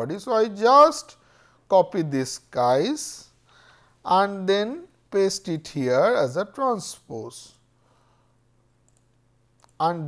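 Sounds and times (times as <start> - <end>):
person speaking: 0.0 - 3.4, 4.0 - 7.6, 9.6 - 10.0
low steady hum: 0.0 - 10.0
computer mouse clicks: 8.8 - 9.8.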